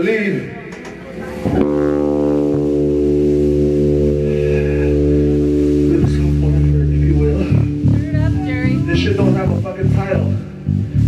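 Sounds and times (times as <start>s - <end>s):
electric and bass guitar chord: 1.4s - 11.0s.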